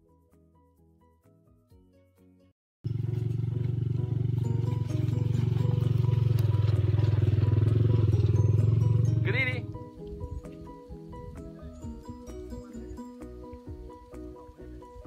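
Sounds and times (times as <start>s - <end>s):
background music: 0.0s - 15.0s
motorcycle engine running: 2.8s - 12.2s.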